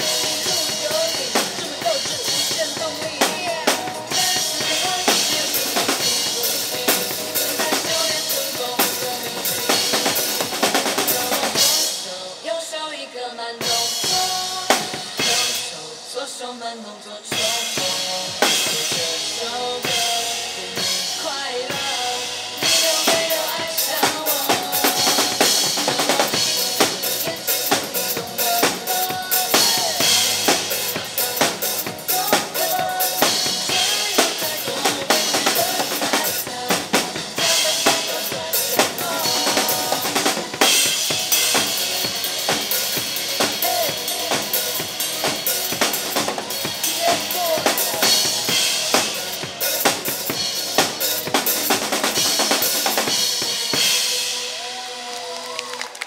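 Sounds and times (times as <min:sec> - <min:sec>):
acoustic drum kit played hard: 0:00.0 - 0:12.4, 0:13.6 - 0:16.2, 0:17.3 - 0:55.1
pop backing track with singing: 0:00.0 - 0:56.0.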